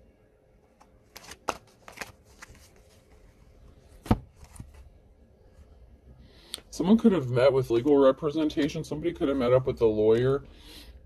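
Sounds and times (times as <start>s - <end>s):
cards being shuffled: 0.8s - 3.3s, 4.0s - 4.9s.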